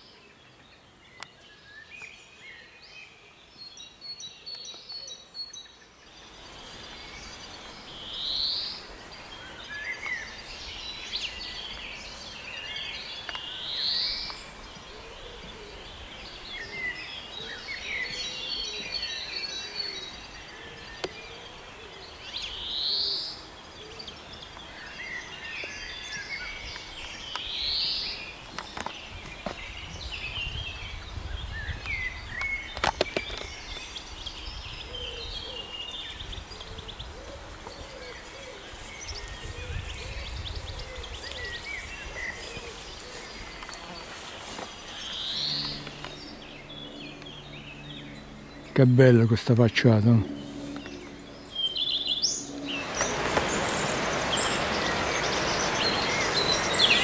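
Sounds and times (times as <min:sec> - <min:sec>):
birds twittering and chirping: 0:00.0 - 0:57.0.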